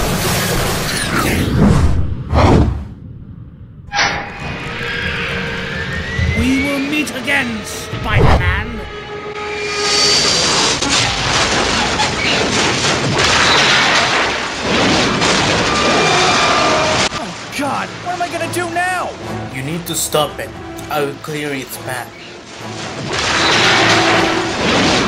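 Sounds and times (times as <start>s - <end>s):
music: 4.2s - 11.0s, 17.3s - 25.0s.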